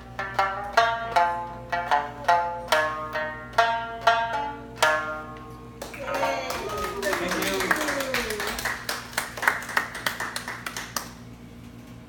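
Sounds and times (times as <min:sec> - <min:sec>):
sparse audience clapping: 0:05.8 - 0:11.3.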